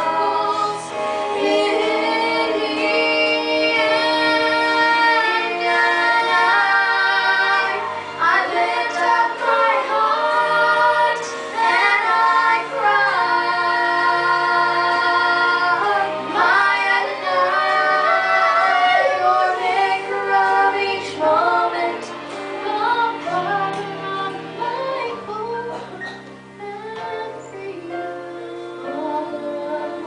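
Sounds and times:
woman singing: 0:00.0 - 0:30.0.

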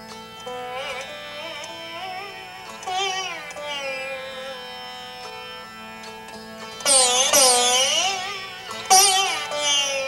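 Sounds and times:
ringing sympathetic strings: 0:00.0 - 0:10.0
slide zither gliding notes: 0:00.1 - 0:10.0.

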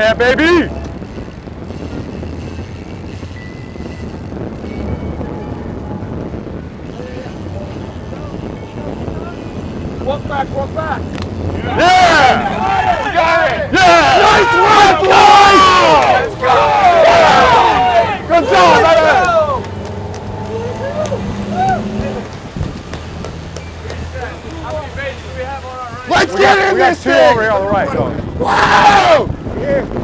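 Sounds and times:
boat engines humming: 0:00.0 - 0:30.0
men shouting and whooping: 0:10.2 - 0:23.2, 0:23.8 - 0:30.0.

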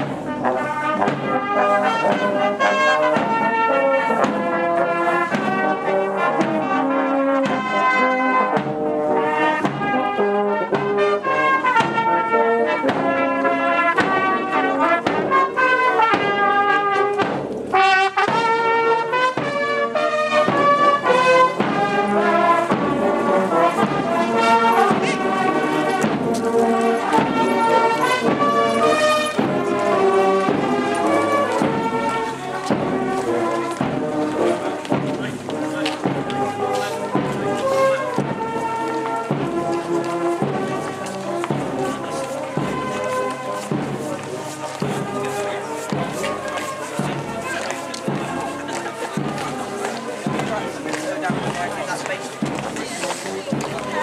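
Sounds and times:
brass band playing: 0:00.0 - 0:54.0.

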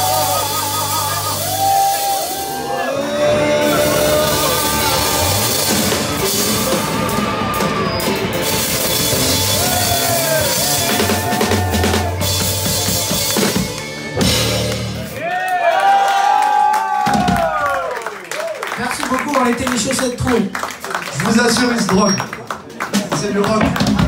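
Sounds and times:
wavering high calls: 0:00.0 - 0:12.1
bass line: 0:00.0 - 0:15.2
drum kit played hard: 0:00.0 - 0:15.2.

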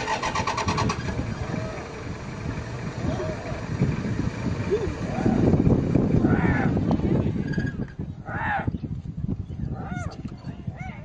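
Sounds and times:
vehicle engine starting and running: 0:00.0 - 0:08.1
indistinct voices: 0:04.6 - 0:08.7.

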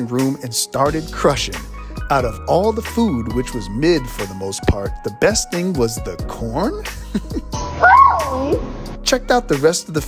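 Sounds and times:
background music: 0:00.0 - 0:10.0
vocal cry rising and falling: 0:07.6 - 0:08.7.

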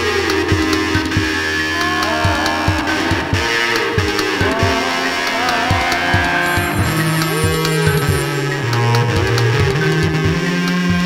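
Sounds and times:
electric guitar bending notes: 0:00.0 - 0:10.8.

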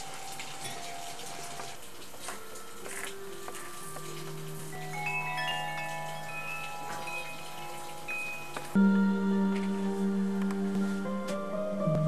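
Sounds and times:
metal chime tubes ringing: 0:04.6 - 0:08.8.

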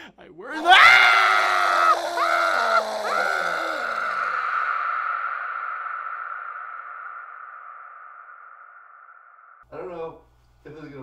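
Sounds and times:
man crying out and laughing: 0:00.4 - 0:05.7.

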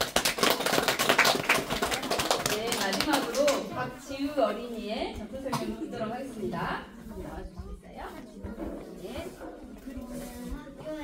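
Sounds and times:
people clapping: 0:00.0 - 0:03.7.

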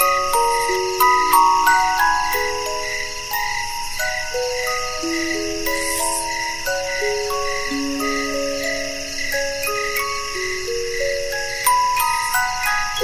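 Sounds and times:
crickets chirping: 0:00.0 - 0:13.0
music box melody: 0:00.0 - 0:13.0.

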